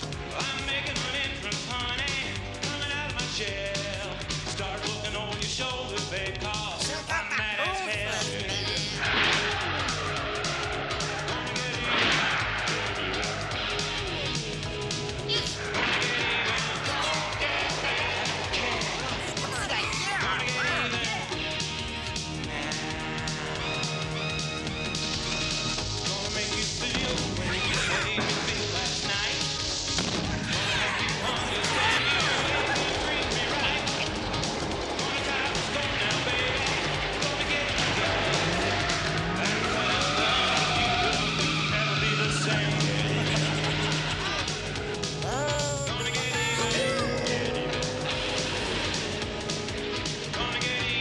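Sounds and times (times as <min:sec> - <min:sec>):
voices: 0:06.6 - 0:09.3, 0:15.3 - 0:21.4, 0:27.3 - 0:29.1, 0:30.5 - 0:34.0, 0:45.2 - 0:49.2
action music: 0:06.6 - 0:09.4
car engines: 0:37.0 - 0:45.2.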